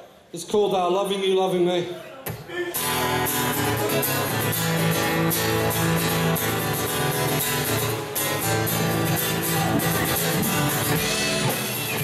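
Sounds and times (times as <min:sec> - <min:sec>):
guitars strummed in steady rhythm: 0:02.7 - 0:12.0.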